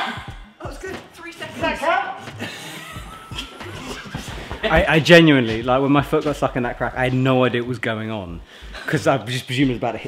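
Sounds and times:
people laughing: 2.2s - 5.7s.

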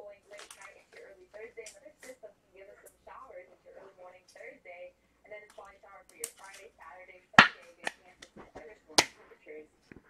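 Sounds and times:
quiet speech: 0.0s - 10.0s.

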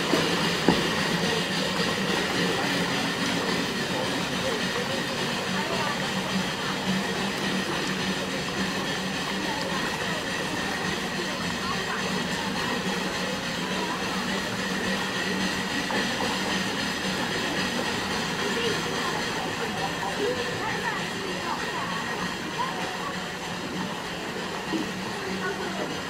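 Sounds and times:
steam engine hissing and rumbling: 0.0s - 26.0s.

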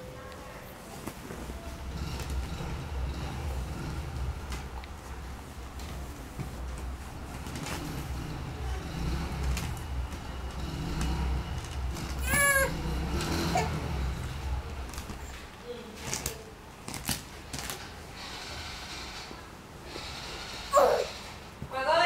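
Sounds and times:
baby squealing: 12.2s - 12.7s
baby crying: 12.2s - 12.8s, 20.7s - 21.1s.

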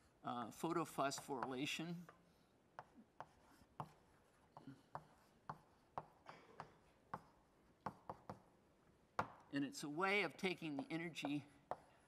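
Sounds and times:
chalk tapping on blackboard: 1.1s - 1.6s, 2.8s - 8.5s, 10.7s - 12.0s.

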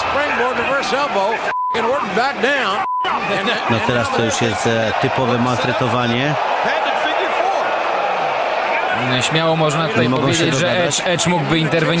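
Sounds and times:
censor bleep: 1.5s - 1.8s, 2.8s - 3.2s.

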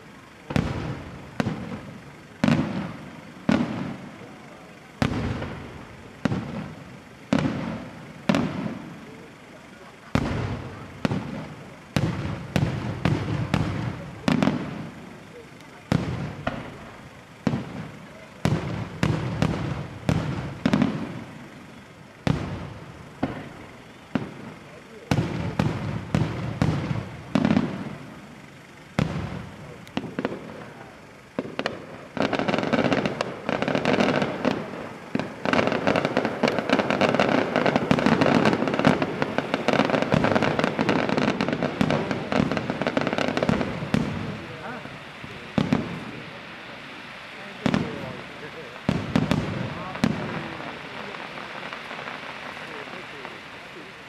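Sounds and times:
firework barrage crackling: 0.0s - 54.0s
firework shells bursting: 0.3s - 54.0s.

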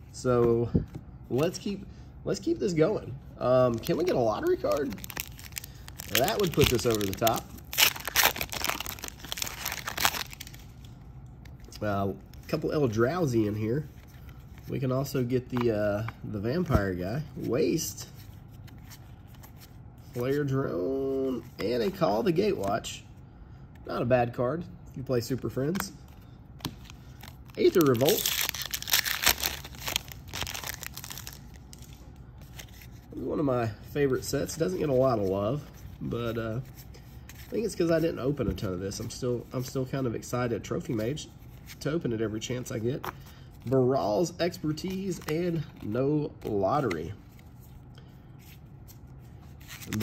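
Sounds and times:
plastic foil wrapper crinkling: 3.7s - 10.9s, 26.8s - 32.8s, 49.6s - 50.0s.

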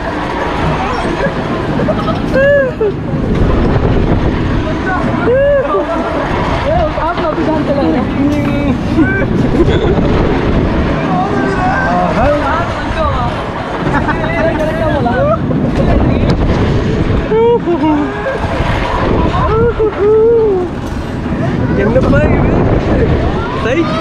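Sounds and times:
riders shouting and laughing: 0.0s - 3.5s, 4.5s - 16.3s, 17.1s - 21.8s
low rumble of ride: 0.0s - 24.0s
rising and falling whoops: 5.0s - 6.2s.

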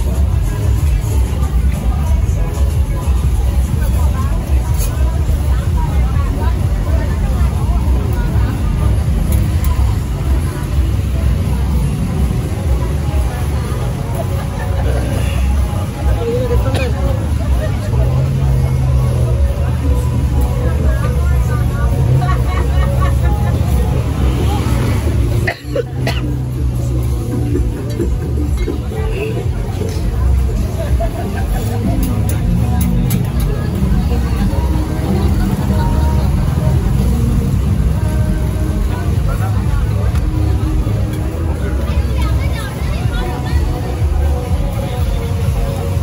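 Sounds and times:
engine hum: 0.0s - 46.0s
traffic rumbling: 0.0s - 46.0s
voices of passers-by: 0.0s - 46.0s.

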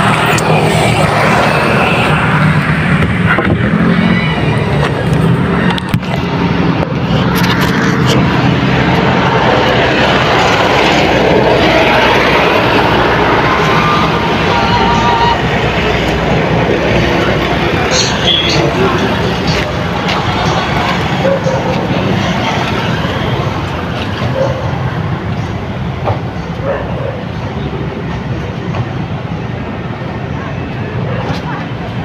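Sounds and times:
vehicle engine running: 0.0s - 29.7s
road traffic noise: 0.0s - 32.0s.

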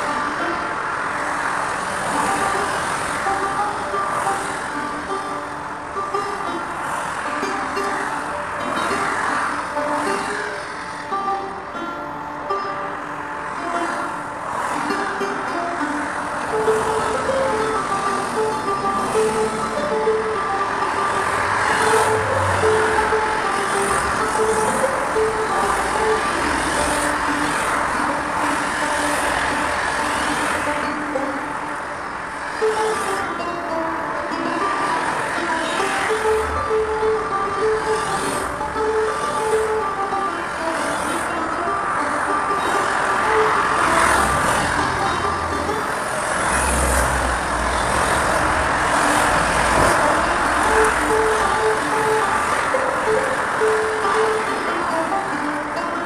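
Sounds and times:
road traffic passing: 0.0s - 56.0s.

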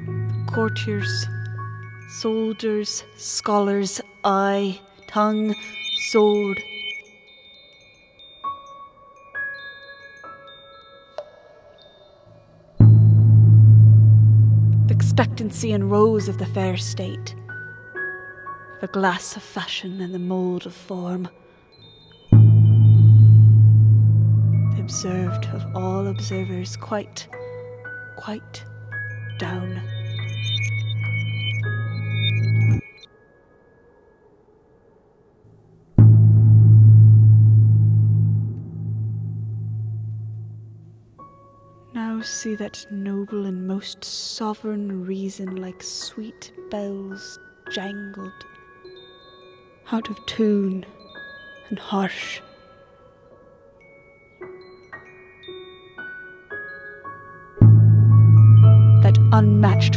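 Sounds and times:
soft chime-like notes: 0.0s - 35.2s, 45.0s - 59.9s
thin faint tone: 11.2s - 17.5s, 22.2s - 33.1s, 57.6s - 59.9s.

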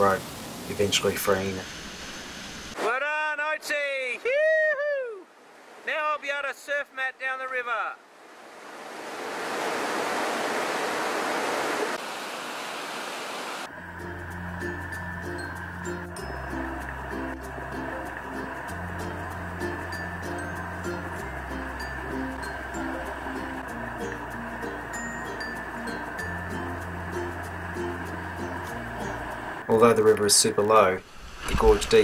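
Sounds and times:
rushing whitewater: 8.1s - 30.0s, 30.7s - 32.0s.

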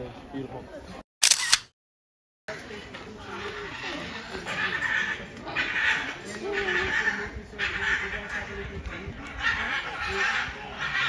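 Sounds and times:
camera shutter clicks: 1.2s - 1.7s
faint voices: 2.5s - 11.0s.

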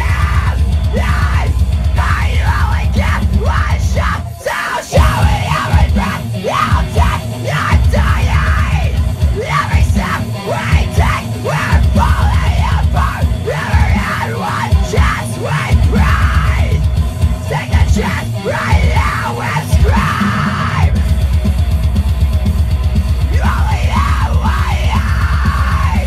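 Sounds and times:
bass: 0.0s - 26.0s
distorted guitars: 0.0s - 26.0s
heavy drums: 0.0s - 26.0s
screamed metal vocals: 0.0s - 26.0s.

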